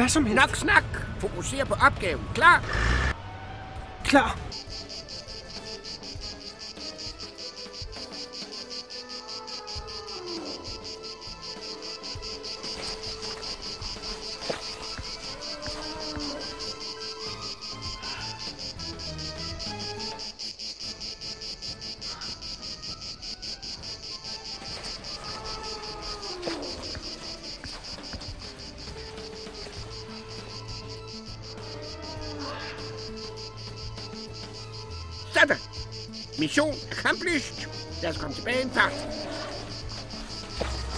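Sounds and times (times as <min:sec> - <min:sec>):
insects chirring: 0:04.1 - 0:40.9.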